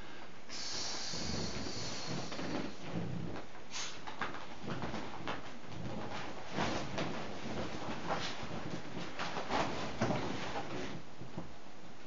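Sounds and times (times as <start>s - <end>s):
person breathing in: 0.0s - 2.8s
person blowing into valve: 0.5s - 2.9s.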